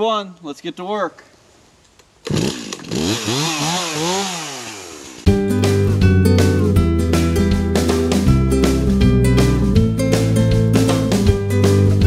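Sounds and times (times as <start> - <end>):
chainsaw engine revving: 2.2 - 5.3.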